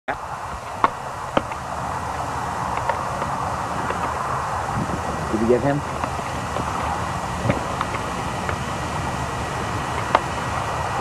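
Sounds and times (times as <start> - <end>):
wind noise on microphone: 0.1 - 11.0.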